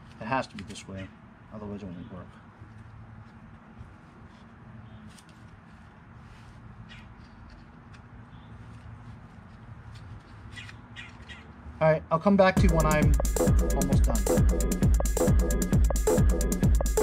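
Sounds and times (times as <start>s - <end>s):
distant bird calls: 4.7s - 5.3s, 6.8s - 8.9s, 10.2s - 11.7s.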